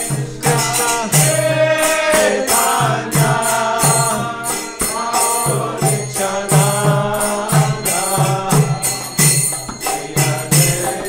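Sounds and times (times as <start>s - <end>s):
small hand cymbals: 0.0s - 11.0s
voices chanting a mantra: 0.0s - 11.0s.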